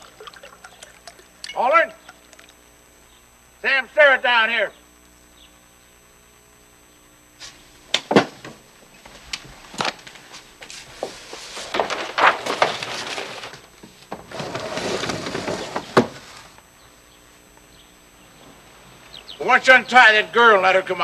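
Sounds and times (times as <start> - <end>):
rustling: 9.0 - 16.7.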